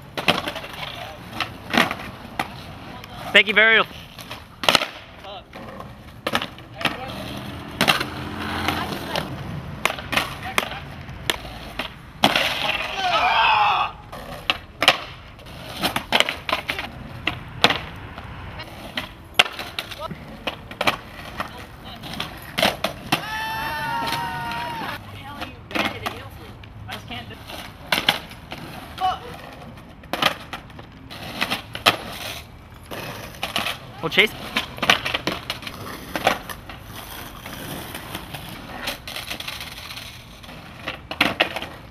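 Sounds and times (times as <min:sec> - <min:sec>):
skateboard wheels rolling on asphalt: 0:00.0 - 0:41.9
skateboards popping and clacking: 0:00.0 - 0:41.9
onlookers shouting: 0:12.6 - 0:14.0, 0:23.1 - 0:25.0.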